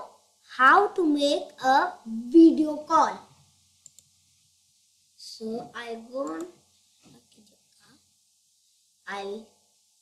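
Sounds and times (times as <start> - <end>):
computer mouse clicks: 3.8 - 4.2, 6.2 - 6.6.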